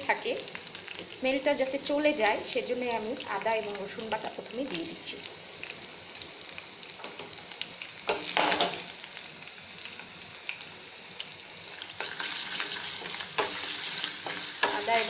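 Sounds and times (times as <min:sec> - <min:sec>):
paste sizzling in hot oil: 0:00.0 - 0:15.0
small crackles of frying: 0:00.0 - 0:15.0.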